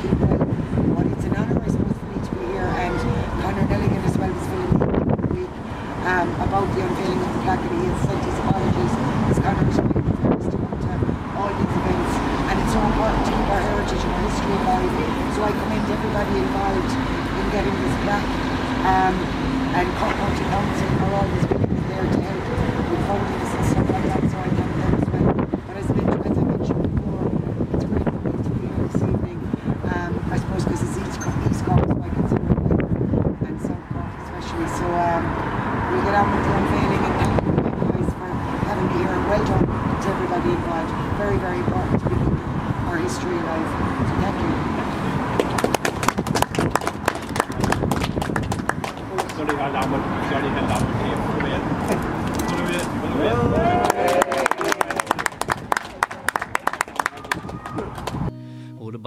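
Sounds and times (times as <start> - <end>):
woman speaking: 0.0 - 32.5, 33.4 - 44.8
road traffic rumble: 0.0 - 59.0
small crowd clapping: 45.3 - 50.0, 53.6 - 58.3.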